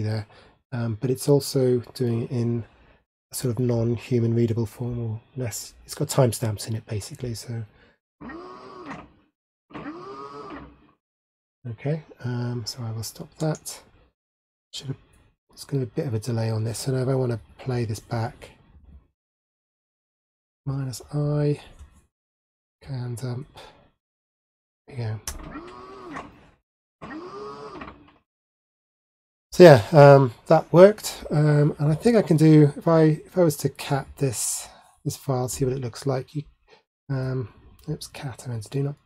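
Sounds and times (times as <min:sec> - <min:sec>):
electric motor whine: 0:08.2 - 0:09.0, 0:09.8 - 0:10.7.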